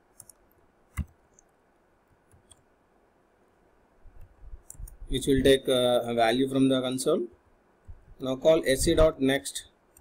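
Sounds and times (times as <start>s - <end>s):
computer clicks: 0.1s - 1.6s, 2.2s - 2.7s, 4.2s - 5.0s.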